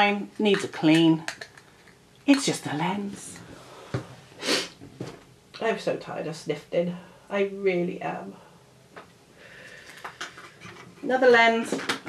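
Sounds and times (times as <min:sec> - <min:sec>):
soft sniff: 0:03.6 - 0:04.8.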